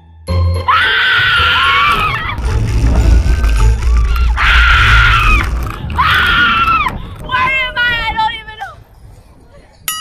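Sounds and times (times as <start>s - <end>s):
wind rumbling on microphone: 1.9s - 9.9s.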